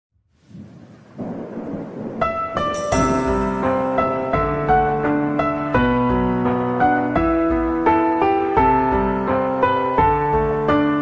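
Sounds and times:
rain: 0.4s - 2.7s
rumbling thunder: 0.4s - 4.8s.

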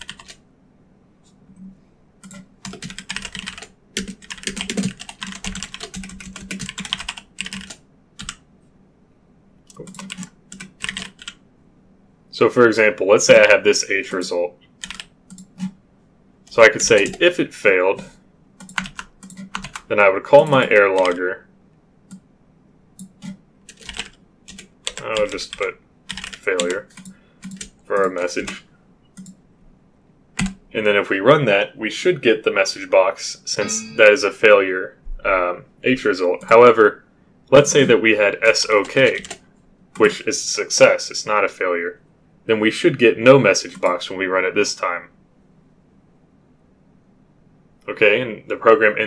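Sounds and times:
keyboard typing: 0.0s - 0.4s, 1.6s - 8.4s, 9.7s - 11.4s, 14.8s - 15.8s, 16.5s - 17.3s, 18.6s - 21.2s, 23.0s - 29.4s, 30.4s - 30.6s, 38.4s - 39.4s.

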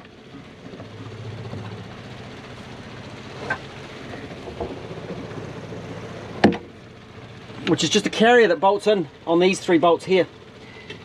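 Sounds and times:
electric pump running: 0.0s - 11.0s.

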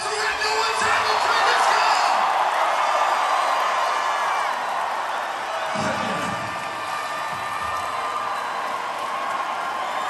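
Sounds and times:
crowd cheering and applauding: 0.0s - 10.0s.

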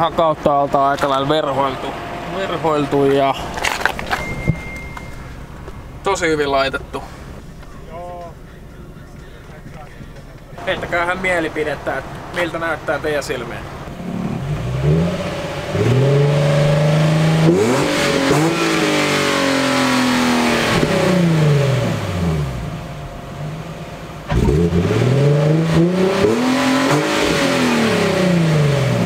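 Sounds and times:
car engine revving: 0.0s - 29.0s.

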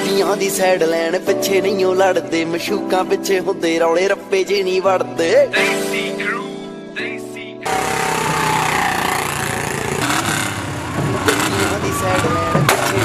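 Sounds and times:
song playing: 0.0s - 13.0s
voices: 5.4s - 10.0s, 11.2s - 13.0s
motorcycle and car engines: 7.6s - 13.0s.

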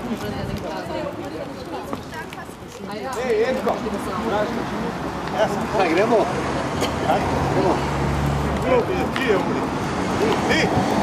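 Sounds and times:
people talking: 0.0s - 7.9s, 8.5s - 10.9s.

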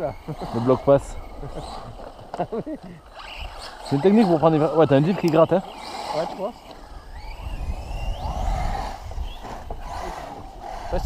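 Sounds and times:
electric motor whine rising: 0.0s - 11.0s
wind rumble on microphone: 6.8s - 11.0s.

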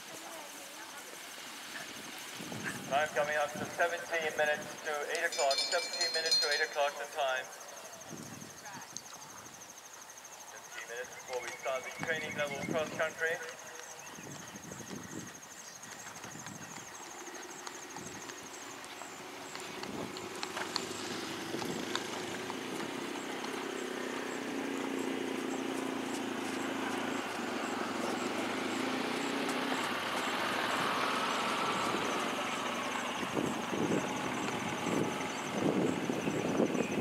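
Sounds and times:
distant engine drone: 0.0s - 8.8s, 9.5s - 37.0s
steady outdoor hiss: 0.0s - 37.0s.

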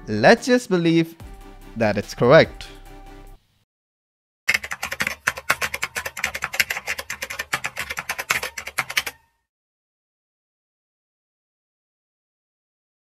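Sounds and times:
background music: 0.0s - 3.5s
fast typing on keyboard: 4.5s - 9.2s.

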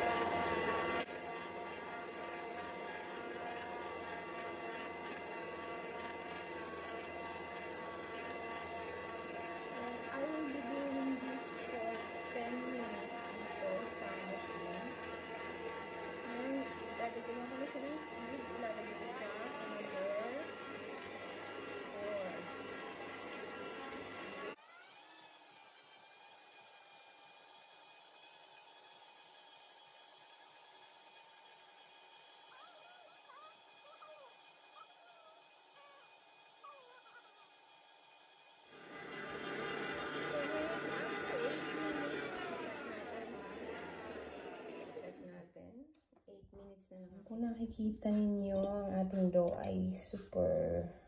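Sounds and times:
stand mixer motor whining: 0.0s - 45.4s
faint voices: 39.0s - 45.4s.

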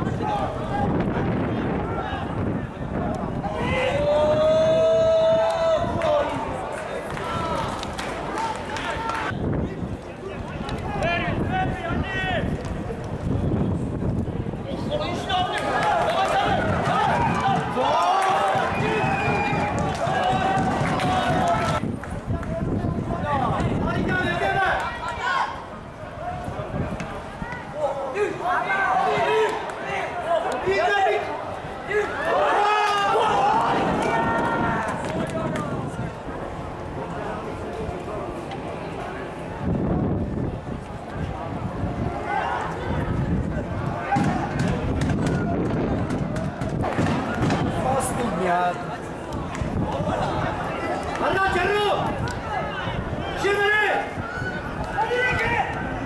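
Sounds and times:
people talking and calling: 0.0s - 56.0s.

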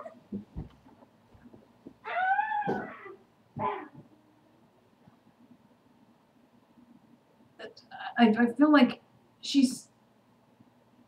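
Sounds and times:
pet animal calling: 2.0s - 4.0s.

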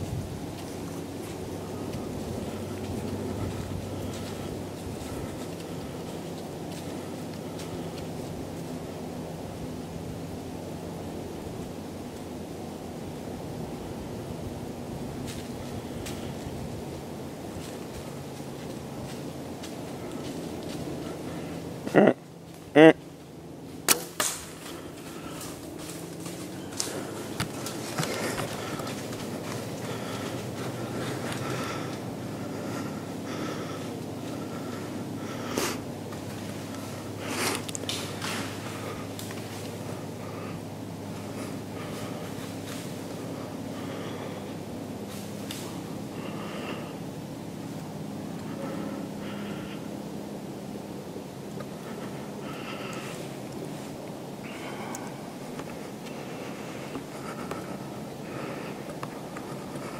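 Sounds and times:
wind noise on microphone: 0.0s - 5.5s
low steady hum: 0.0s - 59.9s
arrow striking crack: 23.9s - 24.6s.

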